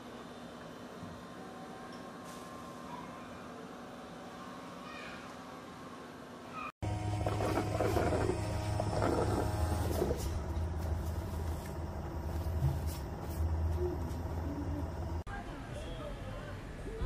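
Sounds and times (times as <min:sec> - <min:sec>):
low machine hum: 0:00.0 - 0:17.0
rattling and whirring: 0:06.8 - 0:15.2.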